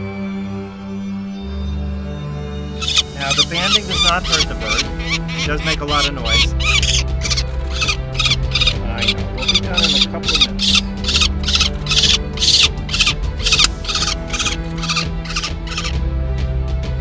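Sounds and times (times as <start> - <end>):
soft background music: 0.0 - 17.0
falcon chick screaming: 2.8 - 16.0.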